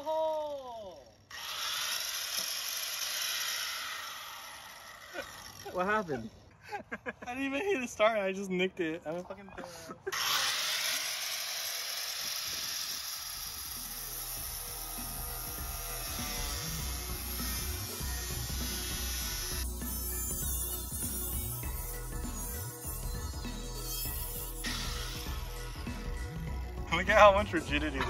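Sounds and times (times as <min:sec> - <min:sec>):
angle grinder cutting metal: 0:00.8 - 0:06.5, 0:10.0 - 0:28.0
background music with bass beat: 0:13.9 - 0:28.0.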